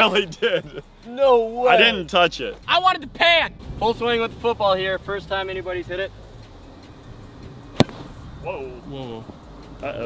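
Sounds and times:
golf club striking ball: 0:07.6 - 0:08.2.

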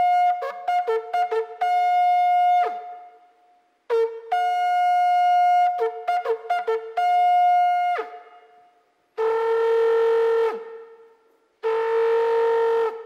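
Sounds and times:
shofar blasts: 0:11.6 - 0:13.0.

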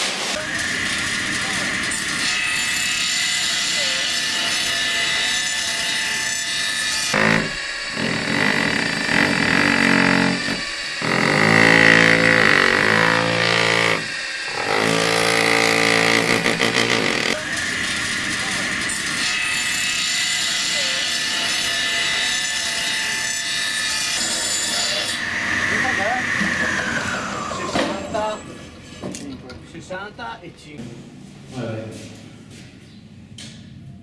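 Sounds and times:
steady mechanical hum: 0:00.0 - 0:34.0.

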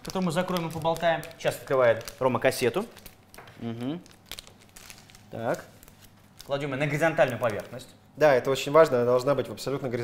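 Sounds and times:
wrapper tearing and crinkling: 0:00.0 - 0:07.9.

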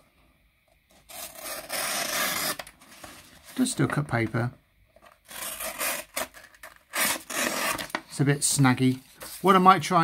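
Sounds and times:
knife slicing paper: 0:01.1 - 0:02.7.

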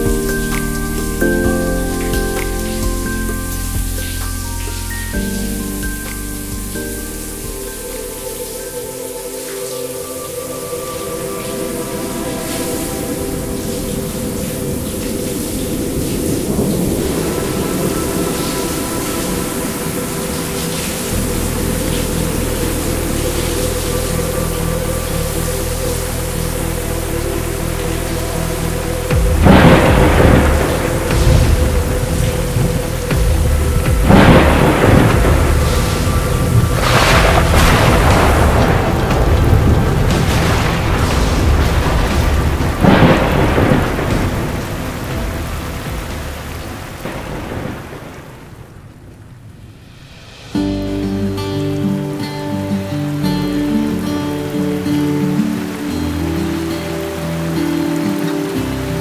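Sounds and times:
ambient music drone: 0:00.0 - 0:48.2, 0:50.2 - 0:59.0
steady rain: 0:00.0 - 0:59.0
loud thunder claps: 0:29.2 - 0:50.3.

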